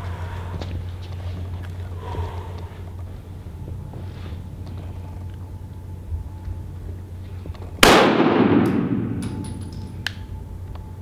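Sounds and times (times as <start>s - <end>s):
steady low hum: 0.0s - 11.0s
pistol shot with echo: 7.8s - 9.8s.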